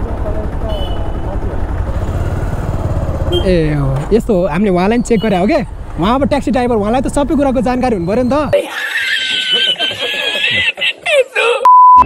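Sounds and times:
motorcycle engine idling: 0.0 - 8.5.

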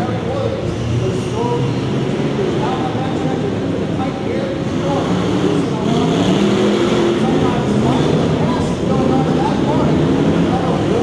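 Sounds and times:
off-road truck engines racing: 0.0 - 11.0.

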